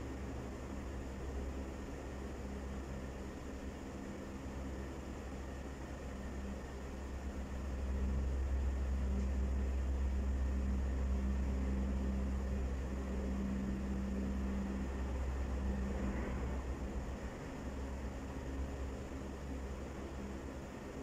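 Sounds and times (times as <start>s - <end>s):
low machine hum drone: 0.0s - 21.0s.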